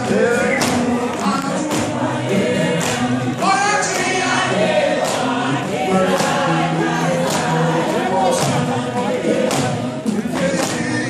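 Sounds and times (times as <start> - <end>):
group singing gospel song: 0.0 - 11.0
steady percussive beat: 0.0 - 11.0.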